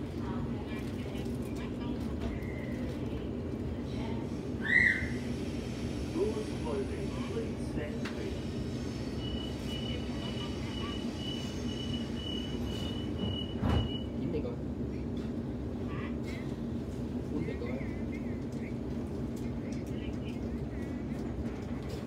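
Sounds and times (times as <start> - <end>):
train carriage low rumble: 0.0 - 22.0
rapid high warning beeps: 9.2 - 14.2
train doors thudding shut: 12.7 - 14.1.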